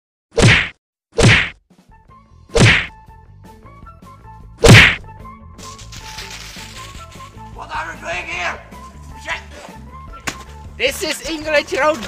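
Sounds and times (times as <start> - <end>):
whack hit sound effects: 0.4 - 1.6, 2.5 - 2.9, 4.6 - 5.0.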